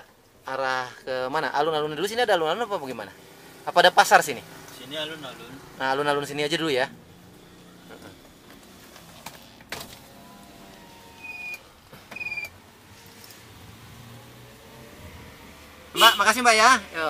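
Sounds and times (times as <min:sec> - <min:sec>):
car running hum: 0:01.9 - 0:17.0.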